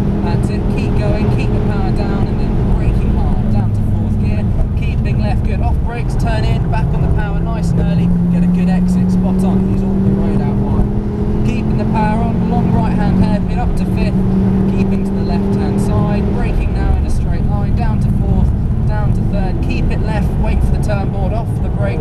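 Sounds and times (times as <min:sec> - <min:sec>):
car engine at full throttle: 0:00.0 - 0:22.0.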